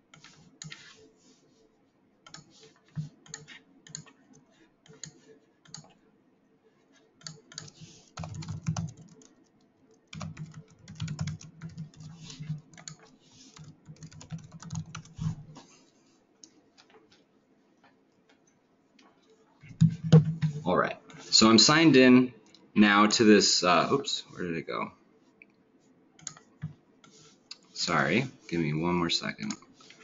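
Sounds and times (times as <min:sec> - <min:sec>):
computer keyboard typing: 0:02.2 - 0:06.0, 0:07.2 - 0:15.4, 0:26.2 - 0:27.2.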